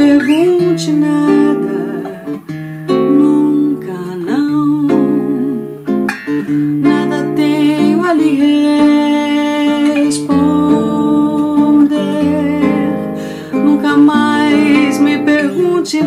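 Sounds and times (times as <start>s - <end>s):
classical guitar playing waltz: 0.0s - 16.0s.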